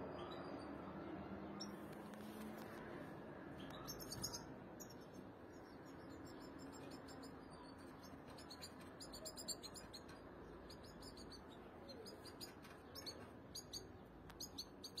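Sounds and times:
faint steady background noise: 0.0 - 15.0.

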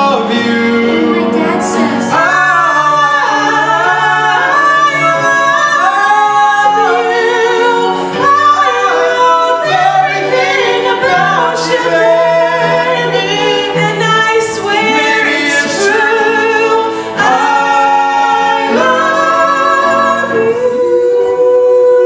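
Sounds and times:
voices singing in harmony: 0.0 - 22.0.

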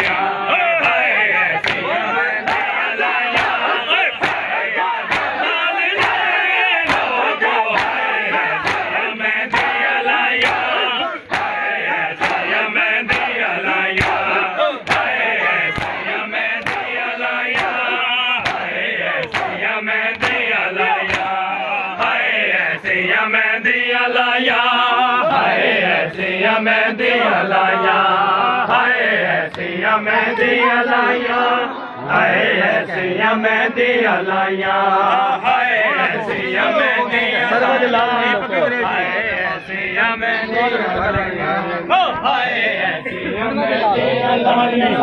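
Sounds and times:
chest beating slaps in unison: 0.0 - 23.0
men shouting and chanting: 0.0 - 45.0.

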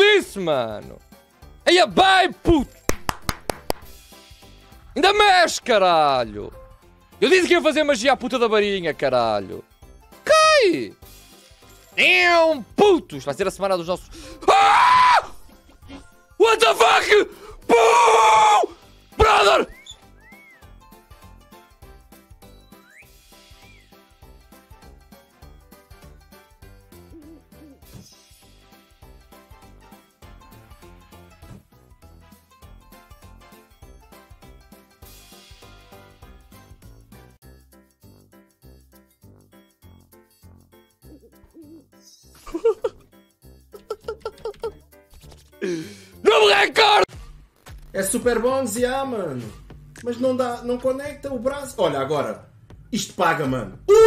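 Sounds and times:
man screaming excitedly: 10.3 - 10.9, 14.3 - 15.4, 16.4 - 19.8, 46.2 - 47.1
man laughing: 41.1 - 43.1, 43.7 - 44.8.

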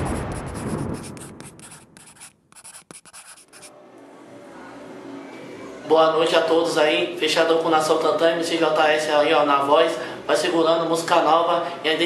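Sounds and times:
pen scratching: 0.0 - 3.7.

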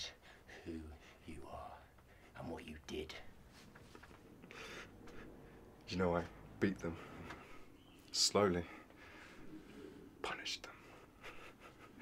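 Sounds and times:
man whispering: 0.0 - 3.4, 8.1 - 8.9, 10.1 - 11.2.

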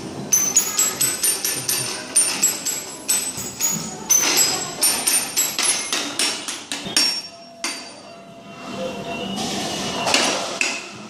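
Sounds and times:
toy xylophone struck with mallet: 0.3 - 8.0.

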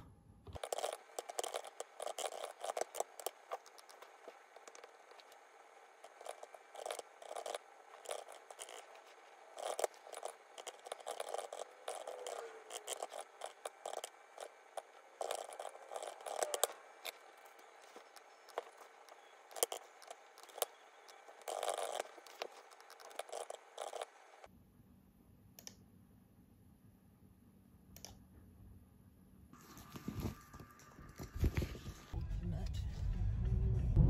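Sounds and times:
mechanical keyboard typing: 0.6 - 5.4, 6.0 - 24.2.

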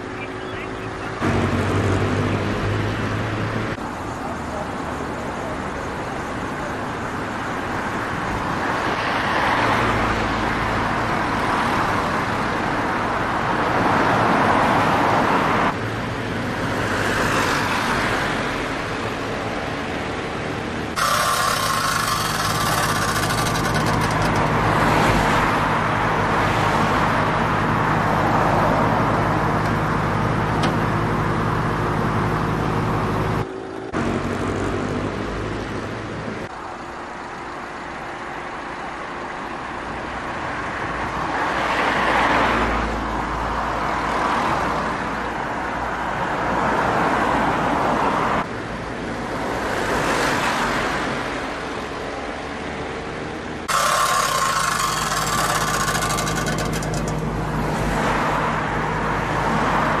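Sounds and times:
cars passing: 0.0 - 60.0.

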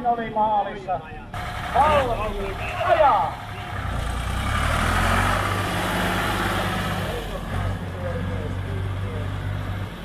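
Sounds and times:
tractor engine running: 1.4 - 10.0.

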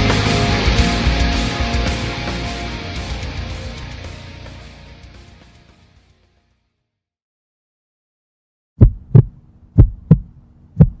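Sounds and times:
deep heartbeat thumps: 8.8 - 11.0.

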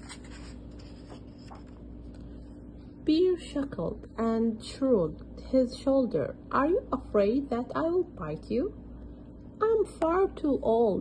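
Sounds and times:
book page turning: 0.0 - 2.3
faint steady hum: 0.0 - 11.0.

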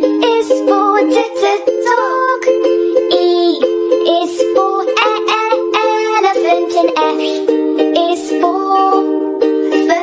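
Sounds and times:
child singing: 0.0 - 10.0
light music: 0.0 - 10.0.

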